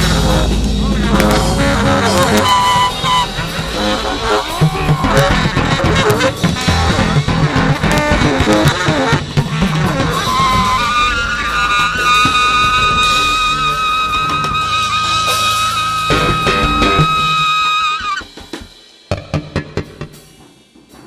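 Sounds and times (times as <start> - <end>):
tenor saxophone: 0.0 - 18.4
bass: 0.0 - 20.4
drum strikes: 0.0 - 21.0.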